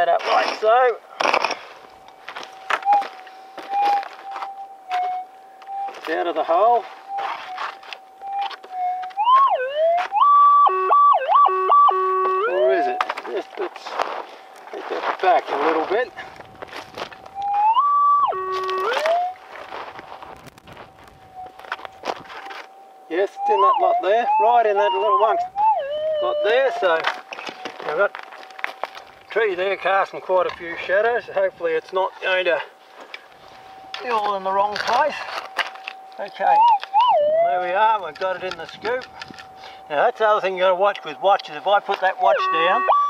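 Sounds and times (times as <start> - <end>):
scuffs and clicks on stony ground: 0.0 - 10.3, 12.2 - 17.8, 18.4 - 22.8, 26.5 - 31.1, 31.7 - 42.7
small pick scraping stony dirt: 0.1 - 2.8
metal detector tone rising and falling: 17.1 - 19.4.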